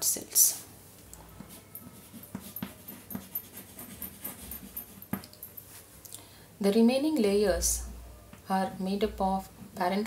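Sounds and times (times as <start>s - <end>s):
chalk scratching on blackboard: 1.4s - 5.6s.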